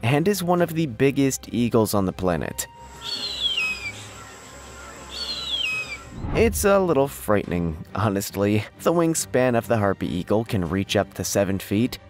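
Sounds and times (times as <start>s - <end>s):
eagle whistled scream: 2.9s - 6.2s
low steady rumble: 6.1s - 6.9s.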